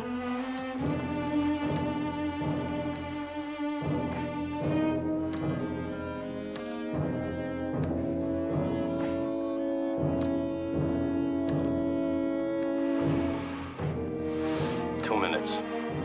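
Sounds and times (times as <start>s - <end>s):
tense orchestral strings and brass: 0.0s - 16.0s
steady low beat: 0.8s - 16.0s.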